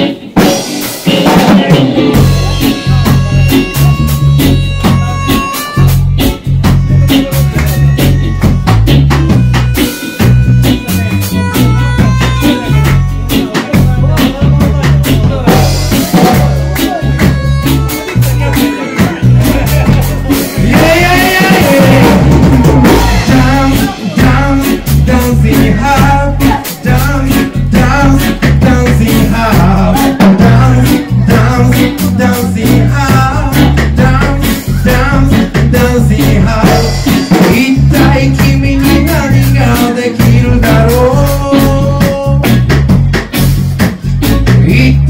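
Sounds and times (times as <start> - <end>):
bass notes: 0.0 - 45.0
drum kit beat: 0.0 - 45.0
electric guitar: 0.0 - 45.0
man singing: 1.0 - 43.0, 44.0 - 45.0.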